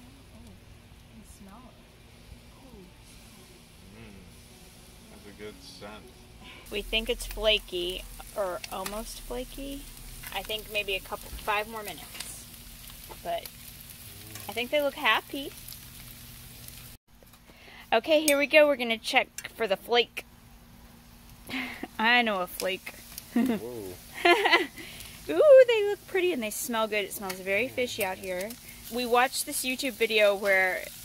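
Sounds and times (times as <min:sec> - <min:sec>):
soft steady hiss: 0:00.0 - 0:31.0
fish sizzling on a grill: 0:01.4 - 0:31.0
faint voices: 0:02.5 - 0:04.4, 0:14.1 - 0:14.6, 0:23.5 - 0:24.0.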